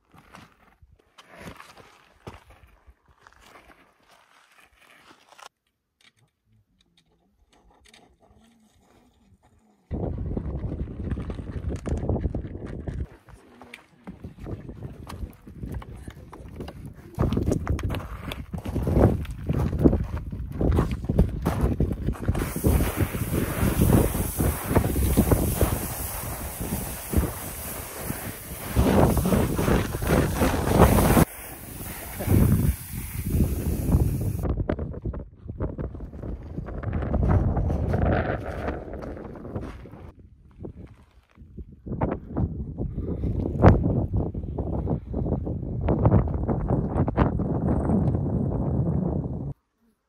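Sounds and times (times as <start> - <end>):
wind buffeting microphone: 9.9 - 13.1, 14.1 - 49.6.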